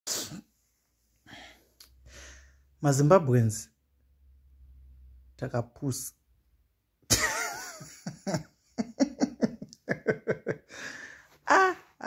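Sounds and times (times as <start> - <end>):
soft breath: 1.1 - 2.7, 10.7 - 11.4.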